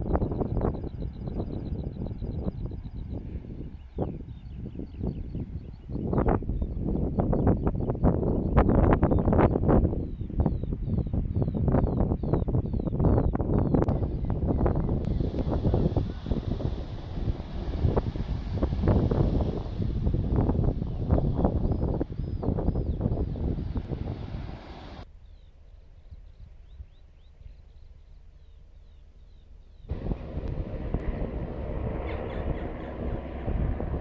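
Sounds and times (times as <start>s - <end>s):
wind buffeting microphone: 0.0s - 25.4s, 29.2s - 34.0s.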